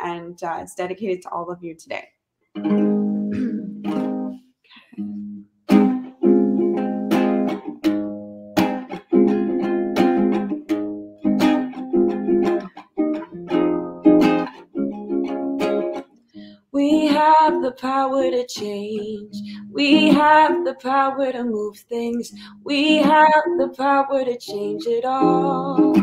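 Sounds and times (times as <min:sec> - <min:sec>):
acoustic guitar strumming chords: 0:02.6 - 0:04.4, 0:05.0 - 0:21.4, 0:22.4 - 0:26.0.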